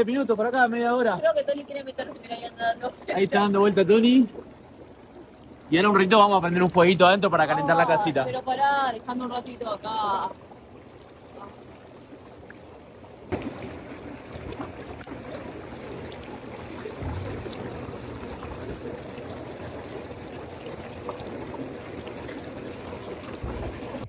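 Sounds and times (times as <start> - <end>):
hot tub bubbling jets: 0.0 - 24.0.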